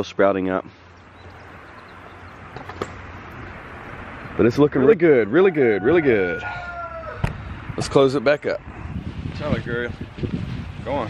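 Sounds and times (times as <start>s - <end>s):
low outdoor rush: 0.0s - 11.0s.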